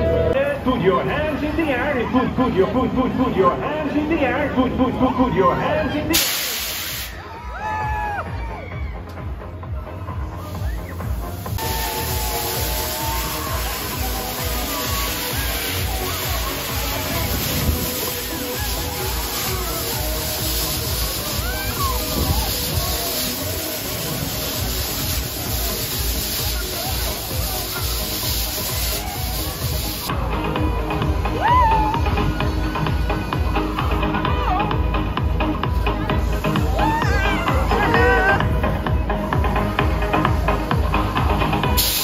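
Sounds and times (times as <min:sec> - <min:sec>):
people shouting and screaming: 0:07.1 - 0:24.0, 0:26.4 - 0:35.0, 0:36.2 - 0:38.7
dance music with steady beat: 0:08.4 - 0:41.8.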